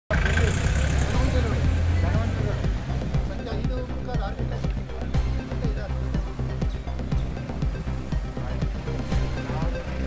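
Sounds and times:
voices talking: 0.1s - 10.0s.

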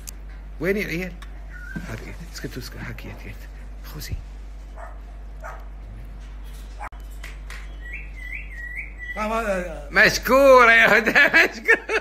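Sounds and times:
low electrical hum: 0.0s - 12.0s
animal yips: 1.5s - 2.0s.

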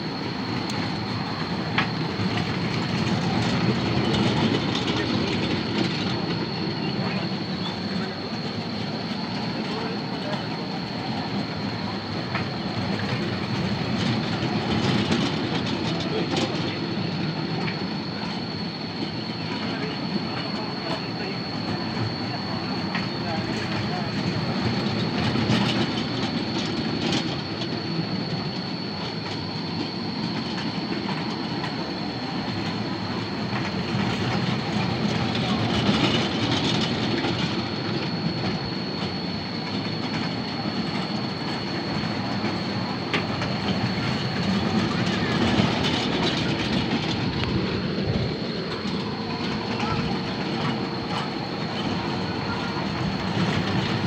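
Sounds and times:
train wheels clattering on rails: 0.0s - 54.0s.

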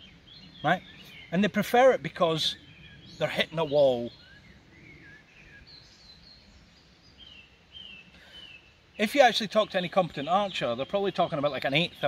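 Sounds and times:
faint bird chirps: 0.0s - 12.0s.

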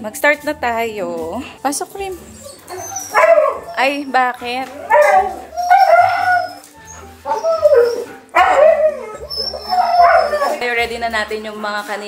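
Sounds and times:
dogs howling: 2.3s - 10.7s.

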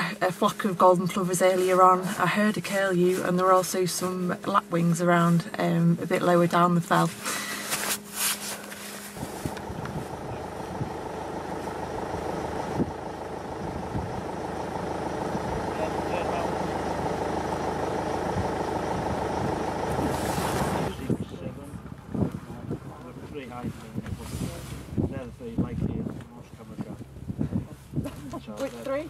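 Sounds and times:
engine drone: 0.0s - 29.0s
rustling: 1.1s - 10.8s, 23.6s - 29.0s.

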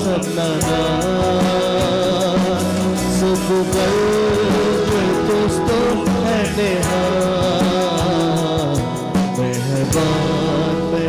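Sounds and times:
bending melodic line: 0.0s - 9.0s
bass guitar: 0.0s - 11.0s
guitars: 0.0s - 11.0s
live worship band playing: 0.0s - 11.0s.

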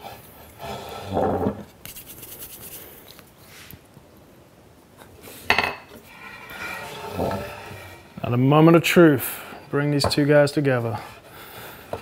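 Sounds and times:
wood scraping and knocking: 6.2s - 8.0s.

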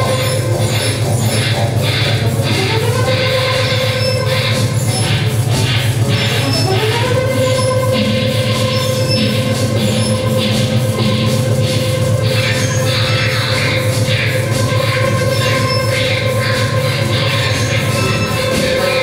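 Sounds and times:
high electronic drone: 0.0s - 19.0s.

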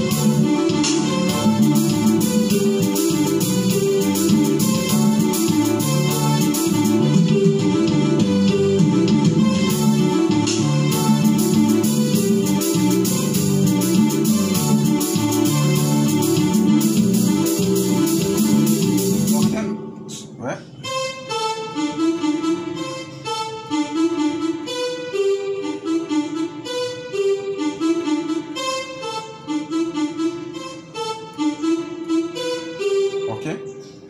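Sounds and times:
electronic keyboard chords over beat: 0.0s - 34.0s
slow keyboard melody single notes: 0.0s - 34.0s.

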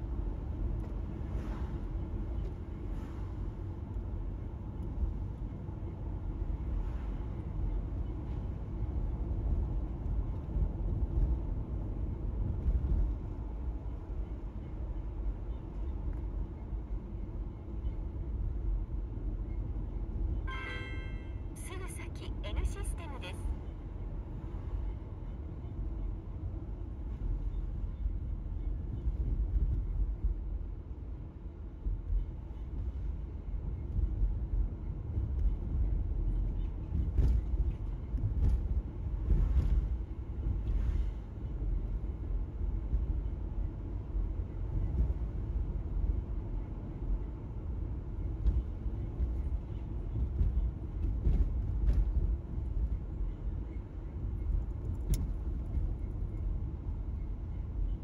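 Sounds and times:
car interior road rumble: 0.0s - 19.4s, 20.0s - 58.0s.

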